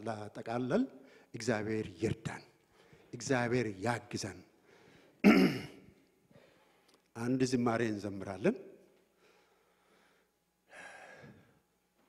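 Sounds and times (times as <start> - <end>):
man clearing his throat: 5.2 - 5.9.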